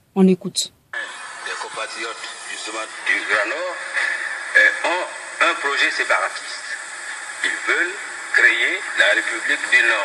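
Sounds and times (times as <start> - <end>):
debate speech through phone speaker: 0.2 - 6.8, 7.4 - 10.0
steady hiss: 0.9 - 10.0.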